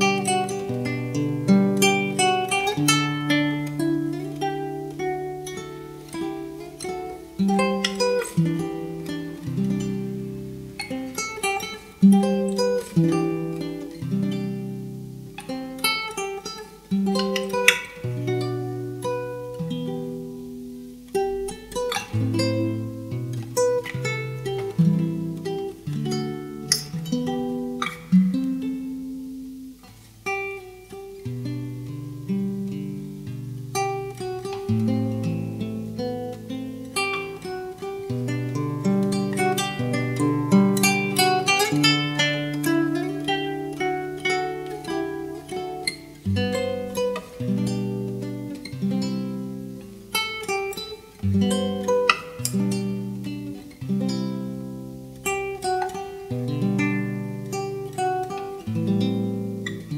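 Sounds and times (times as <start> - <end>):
fingerpicked classical guitar: 0.0 - 59.9.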